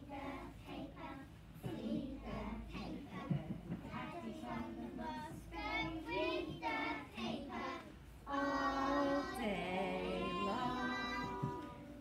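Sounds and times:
children singing together: 0:00.0 - 0:12.0.

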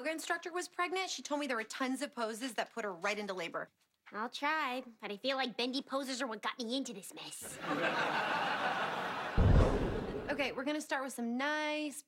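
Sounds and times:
audience laughing: 0:07.5 - 0:10.4
loud low thump: 0:09.3 - 0:10.4.

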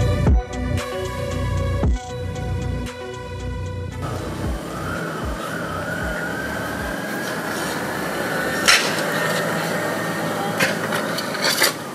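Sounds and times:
wavering siren-like tone: 0:04.0 - 0:11.6
steady rushing noise: 0:04.0 - 0:11.9.

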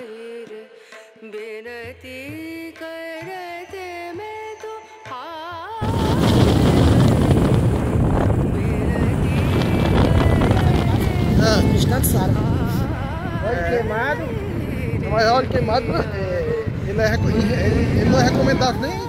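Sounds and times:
wind rush and road noise: 0:05.8 - 0:19.0.

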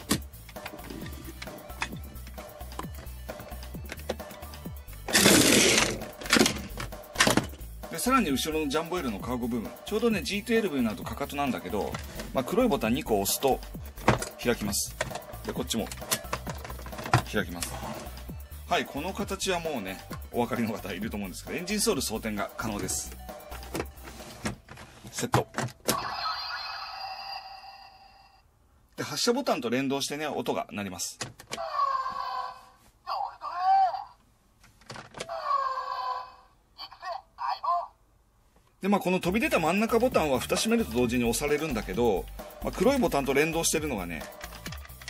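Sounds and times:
background music: 0:00.0 - 0:26.1, 0:39.0 - 0:45.0
toy car wheels rolling on plastic: 0:05.1 - 0:06.7.

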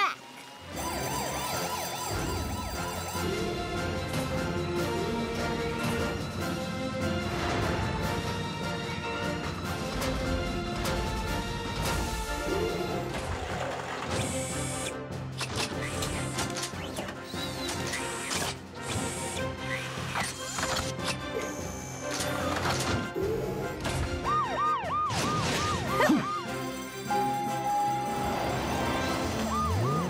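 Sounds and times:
upbeat cartoon music: 0:00.0 - 0:30.0
fast warbling siren: 0:00.6 - 0:04.0, 0:24.2 - 0:30.0
mechanical clanks and whirs: 0:09.8 - 0:24.2.

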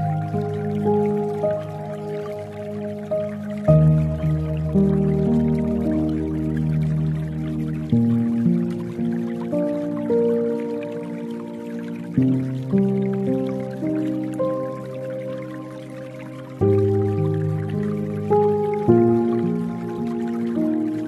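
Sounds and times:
slow soft piano music: 0:00.0 - 0:21.0
water dripping and trickling: 0:00.0 - 0:21.0.

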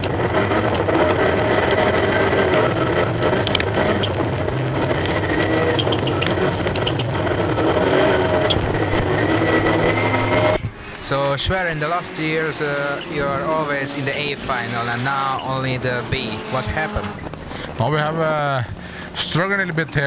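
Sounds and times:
sharp clicks and knocks: 0:00.0 - 0:07.5
race car engine accelerating: 0:00.0 - 0:18.3.

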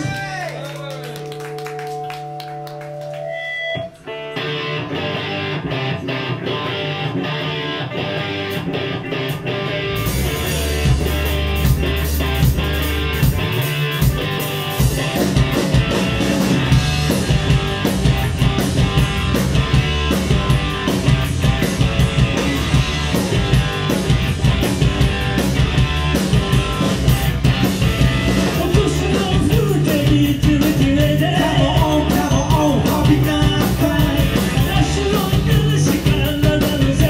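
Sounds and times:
rock band playing: 0:00.0 - 0:37.0
guitar chords ringing: 0:01.0 - 0:29.9
bass and kick drum: 0:10.0 - 0:37.0.

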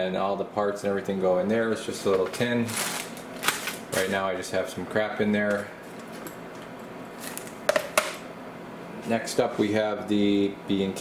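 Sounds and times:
plastic bag rustle: 0:02.2 - 0:04.2.

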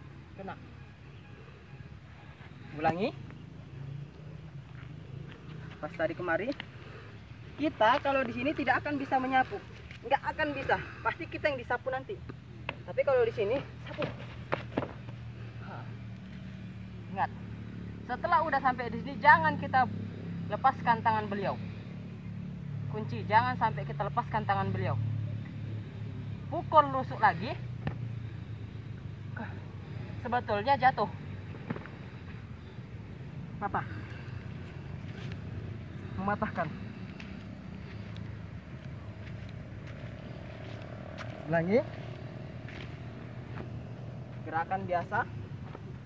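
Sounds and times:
steady low engine hum: 0:00.0 - 0:46.0.

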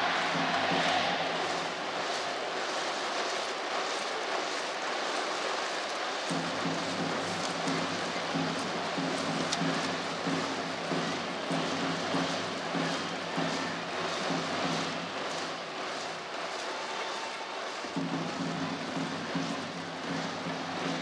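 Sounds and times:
rhythmic cheering music: 0:00.0 - 0:21.0
stadium crowd din: 0:00.0 - 0:21.0.

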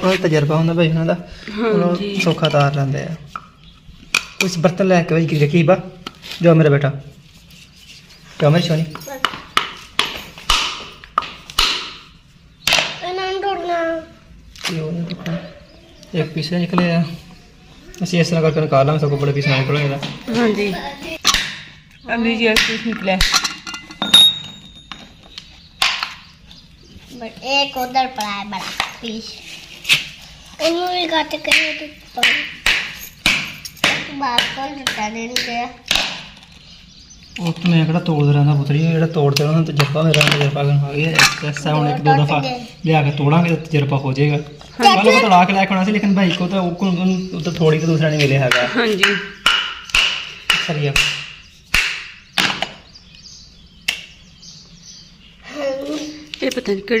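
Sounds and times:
sharp knocks: 0:09.2 - 0:13.0, 0:31.5 - 0:36.4, 0:48.4 - 0:52.9
people talking: 0:17.9 - 0:21.2, 0:27.1 - 0:29.4, 0:37.4 - 0:49.2, 0:55.5 - 0:57.0.

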